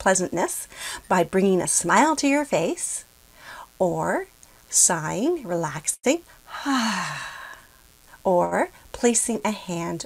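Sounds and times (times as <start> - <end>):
woman sighing: 6.5 - 7.7.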